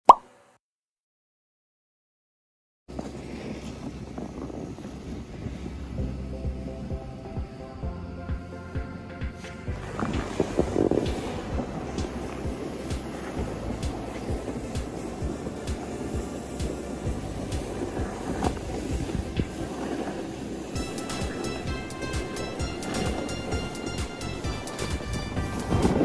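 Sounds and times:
snowboard scraping over snow: 0:02.9 - 0:26.0
wind on microphone: 0:02.9 - 0:26.0
background music: 0:06.0 - 0:26.0.

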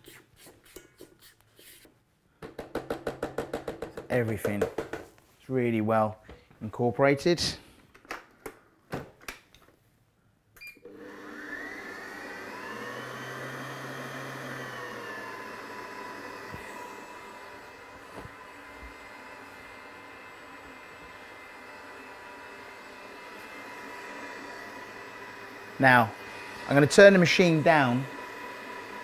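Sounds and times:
mixer head clicks and knocks: 0:02.4 - 0:05.1
stand mixer motor whining: 0:10.9 - 0:29.0.

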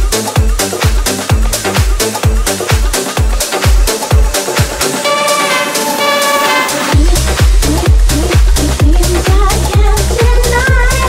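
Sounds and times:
house music: 0:00.0 - 0:11.0.

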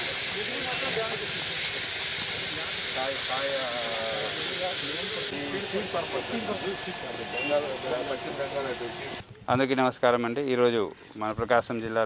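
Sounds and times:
loud high hiss: 0:00.0 - 0:09.2.

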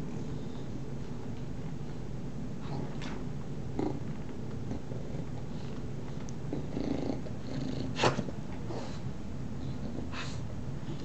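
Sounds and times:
dogs growling: 0:02.6 - 0:05.6, 0:06.4 - 0:08.9.

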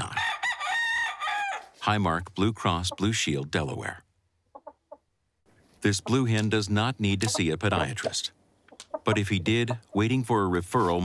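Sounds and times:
rooster crowing: 0:00.0 - 0:01.7.

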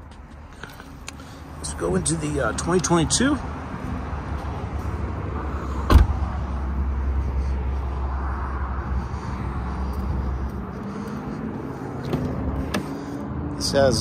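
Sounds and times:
car door shutting: 0:05.8 - 0:06.2, 0:12.0 - 0:13.0
car door latch click: 0:05.9 - 0:06.1.

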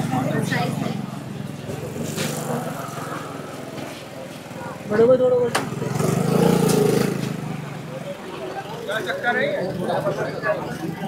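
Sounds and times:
small motorcycle engine idling: 0:00.0 - 0:11.0.

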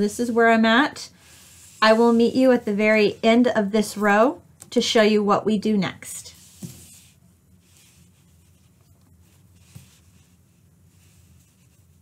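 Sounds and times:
yarn rustling with crochet hook: 0:00.0 - 0:04.2, 0:06.3 - 0:12.0
steady low hum: 0:00.0 - 0:12.0.

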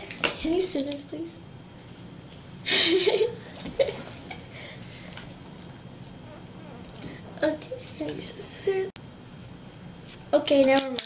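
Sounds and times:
person's voice: 0:06.4 - 0:08.9.

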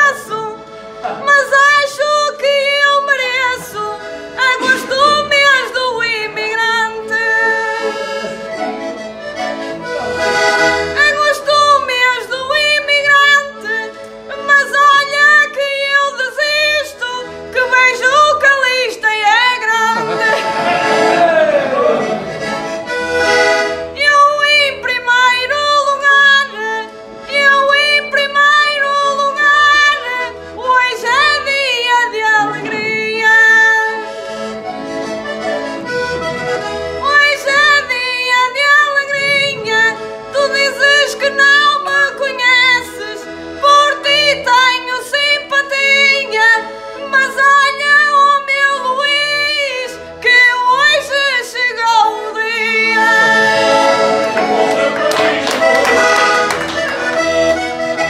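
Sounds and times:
button accordion playing lively melody: 0:00.0 - 0:58.0.

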